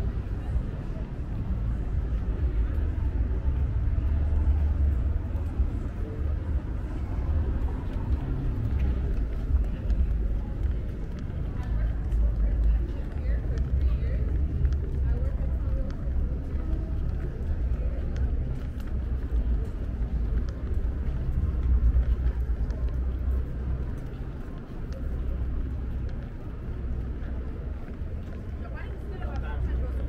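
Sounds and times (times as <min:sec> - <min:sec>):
passers-by talking: 0:00.0 - 0:30.0
steady low street rumble: 0:00.0 - 0:30.0.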